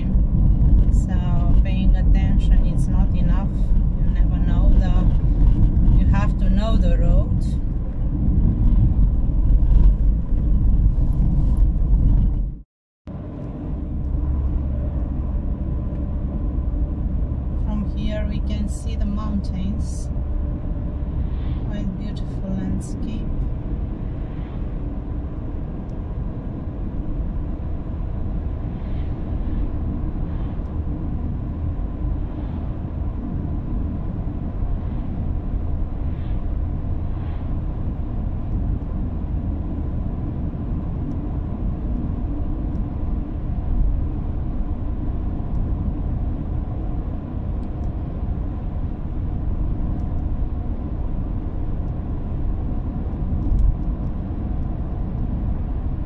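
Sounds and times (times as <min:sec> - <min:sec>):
car engine and tyres rumbling: 0:00.0 - 0:56.0.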